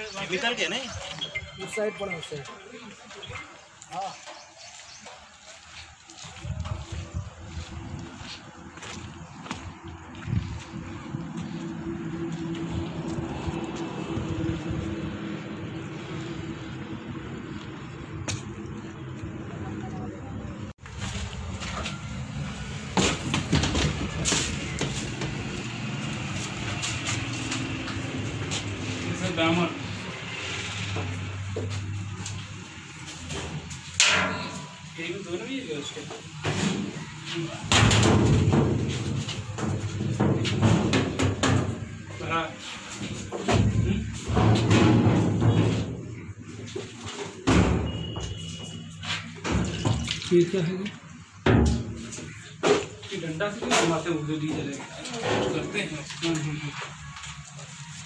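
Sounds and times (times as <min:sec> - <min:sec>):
men talking: 0:00.0 - 0:07.9, 0:28.9 - 0:30.2, 0:34.9 - 0:36.5, 0:37.2 - 0:37.7, 0:42.0 - 0:44.3, 0:50.2 - 0:51.2, 0:52.9 - 0:57.5.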